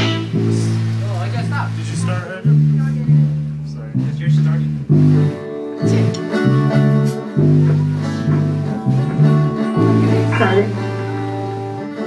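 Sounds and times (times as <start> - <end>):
electric guitar through amplifier: 0.0 - 12.0.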